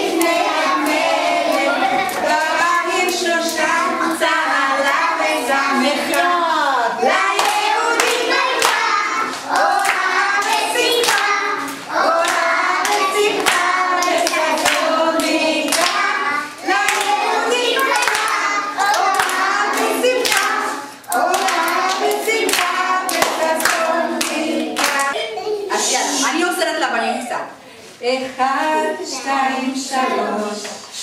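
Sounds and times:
woman and children singing: 0.0 - 26.3, 28.0 - 31.0
hand clapping: 7.3 - 16.1, 17.8 - 25.2.

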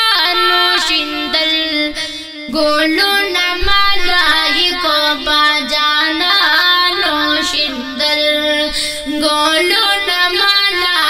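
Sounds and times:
boy singing: 0.0 - 11.0.

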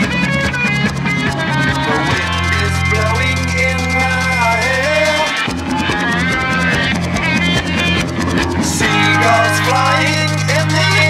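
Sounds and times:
bass and drums: 0.0 - 11.0
electric guitar: 0.0 - 11.0.

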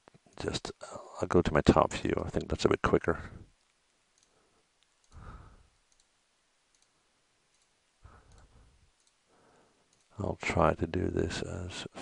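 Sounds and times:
faint computer mouse clicks: 3.6 - 5.2, 5.9 - 9.2, 9.9 - 10.2.

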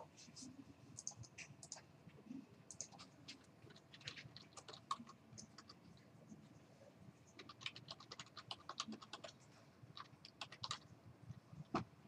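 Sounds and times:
typing on computer keyboard: 1.0 - 1.8, 2.7 - 5.8, 7.4 - 10.9.

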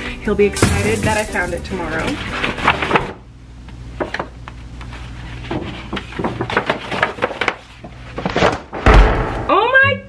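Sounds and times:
knocks and rustles of rummaging: 0.6 - 3.2, 5.4 - 8.7
heavy thump: 8.8 - 9.5.

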